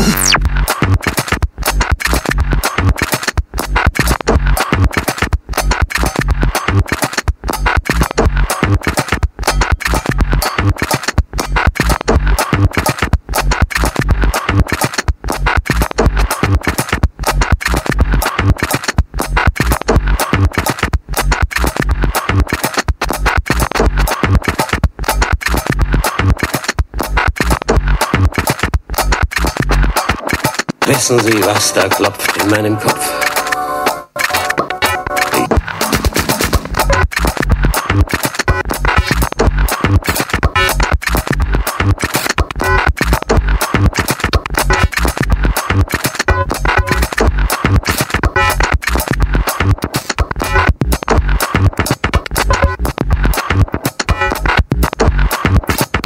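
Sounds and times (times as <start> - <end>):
electronic dance music: 0.0 - 1.2, 30.8 - 56.0
bass drum beat: 0.0 - 32.7, 34.8 - 56.0.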